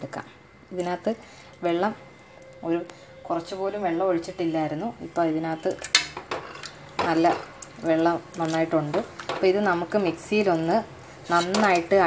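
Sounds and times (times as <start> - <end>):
spatula tapping and scraping: 5.7 - 9.6, 11.3 - 12.0.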